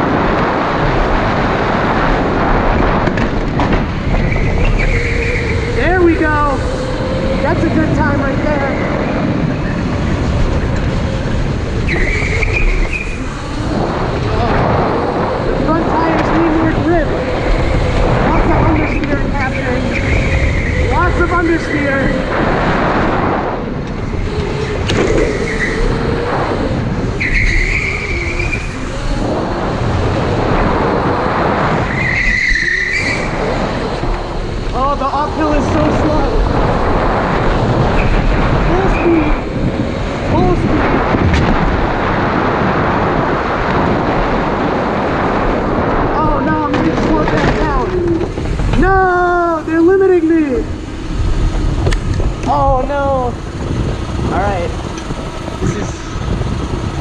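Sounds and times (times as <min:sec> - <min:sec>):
electric go-kart rumble: 0:00.0 - 0:57.0
wind on microphone: 0:00.0 - 0:57.0
tyre squeals: 0:04.0 - 0:07.5, 0:11.1 - 0:13.7, 0:15.5 - 0:22.3, 0:24.4 - 0:26.3, 0:27.0 - 0:29.3, 0:31.8 - 0:34.3.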